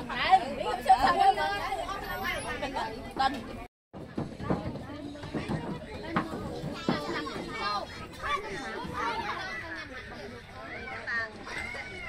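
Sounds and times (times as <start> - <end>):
children talking and calling out: 0.0 - 12.0.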